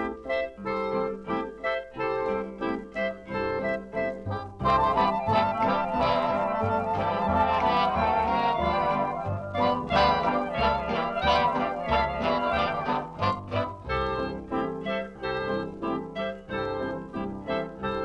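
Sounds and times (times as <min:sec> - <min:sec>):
swing dance band music: 0:00.0 - 0:18.0.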